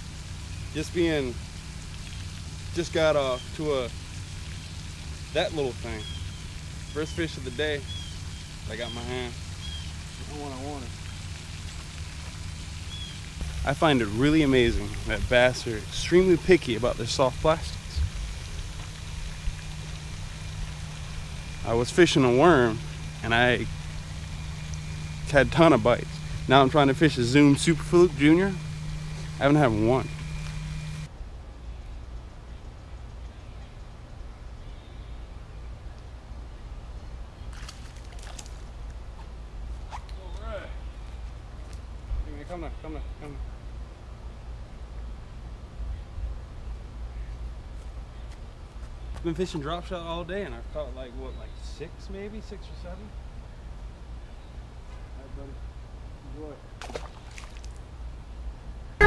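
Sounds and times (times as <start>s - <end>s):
wavering voiced hum: 0.0s - 31.1s
light hiss: 0.0s - 35.2s
low outdoor rumble: 0.0s - 59.0s
low rumble: 8.2s - 31.6s.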